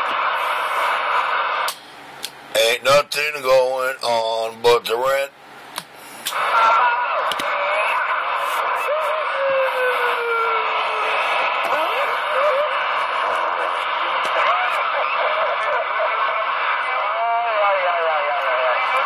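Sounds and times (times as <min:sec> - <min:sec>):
radio static: 0:00.0 - 0:01.7, 0:06.3 - 0:19.0.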